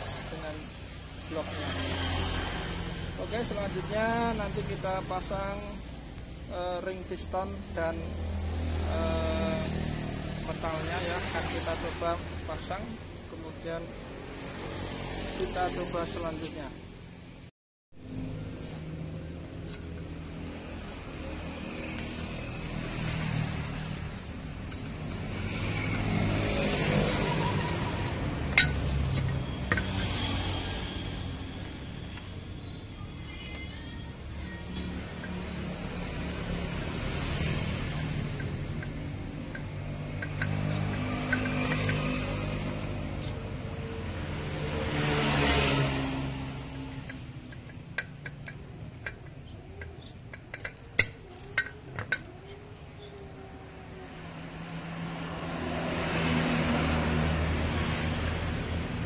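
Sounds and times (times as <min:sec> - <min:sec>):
road traffic passing: 0:00.0 - 0:59.0
sharp metallic clicks of piston rings: 0:38.3 - 0:42.0, 0:47.1 - 0:52.3.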